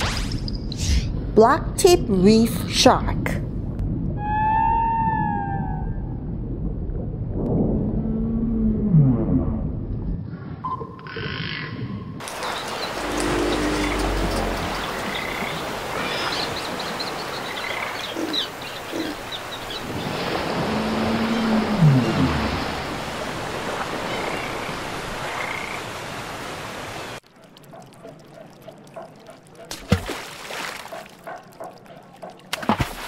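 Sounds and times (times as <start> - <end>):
rushing sea water: 12.2 - 33.0
long falling groan: 12.9 - 14.9.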